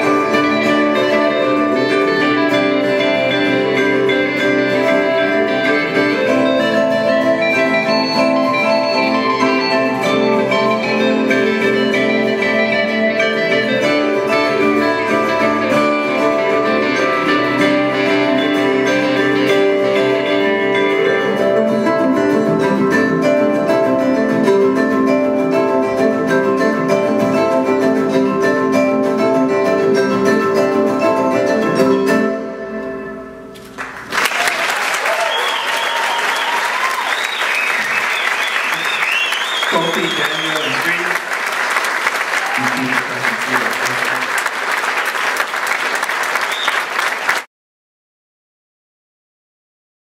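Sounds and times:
acoustic guitars plucked: 0.0s - 34.1s.

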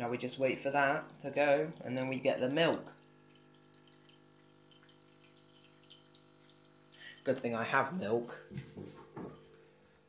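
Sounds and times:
espresso machine pump humming: 0.0s - 8.2s
espresso trickling into mug: 0.1s - 7.6s.

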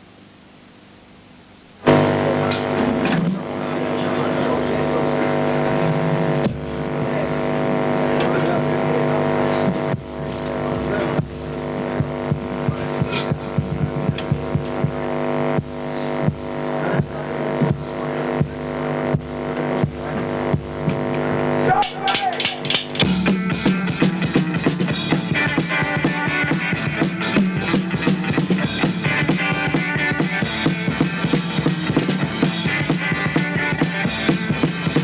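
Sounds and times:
droning guitar chord: 1.8s - 35.0s
drum hits: 1.9s - 3.6s, 9.6s - 35.0s.

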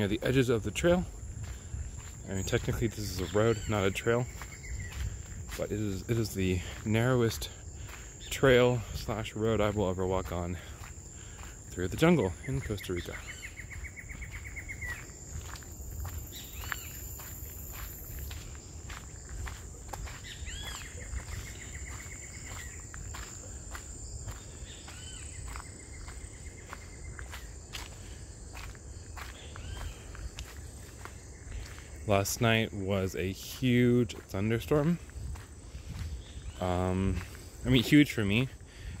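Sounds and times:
footsteps on gravel: 0.0s - 39.0s.

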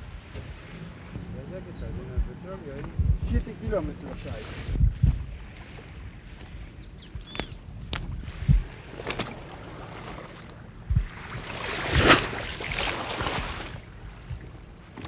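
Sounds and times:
wind buffeting microphone: 0.0s - 15.0s
low thumps: 0.4s - 3.6s.

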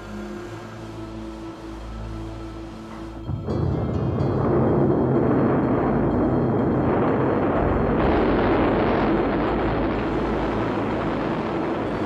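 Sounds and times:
rocket engines roaring: 0.0s - 12.0s.

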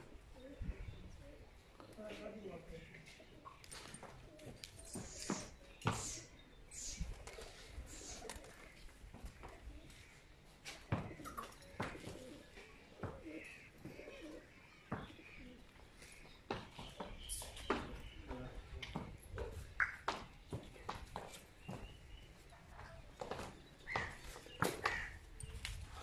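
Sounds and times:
faint bird calls: 4.3s - 18.6s, 21.6s - 26.0s
horse hooves on dirt floor: 18.7s - 26.0s.

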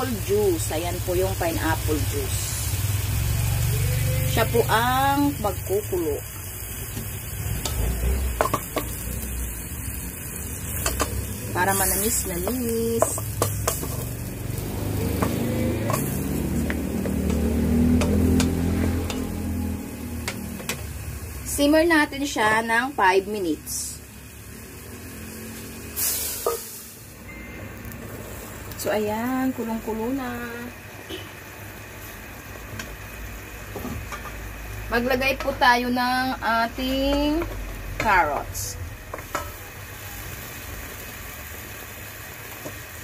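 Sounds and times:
bubbling sizzle in a wok: 0.0s - 43.0s
spatula stirring food in wok: 6.4s - 20.9s
spatula clicking against pan: 15.1s - 19.3s.

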